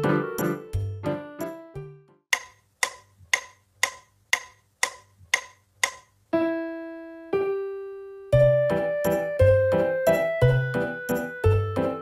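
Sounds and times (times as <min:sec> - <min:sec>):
keyboard piano notes: 0:00.0 - 0:02.2, 0:05.8 - 0:12.0
metronome clicks: 0:02.3 - 0:06.2.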